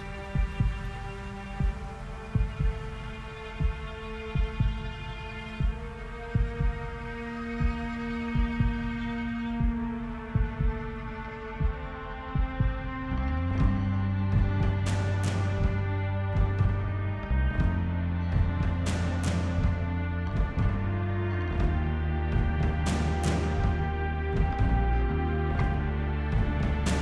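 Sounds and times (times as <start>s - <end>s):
sustained synth chords: 5.4s - 27.0s
deep bass note: 13.2s - 27.0s.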